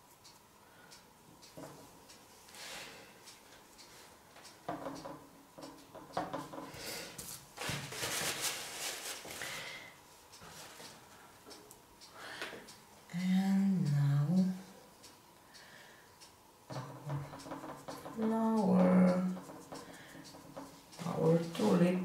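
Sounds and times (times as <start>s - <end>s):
paper towel rustling and crumpling: 7.2s - 9.6s.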